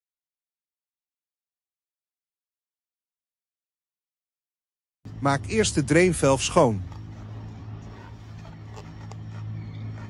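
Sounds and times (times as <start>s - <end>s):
steady low hum: 5.1s - 10.0s.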